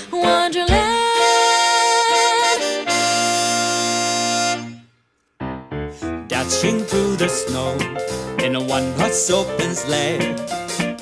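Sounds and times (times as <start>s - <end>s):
band with horn section playing: 0.9s - 4.8s.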